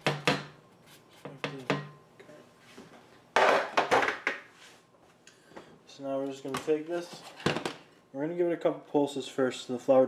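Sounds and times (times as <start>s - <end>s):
baking sheet knocking on glass bowl: 0.0s - 0.6s.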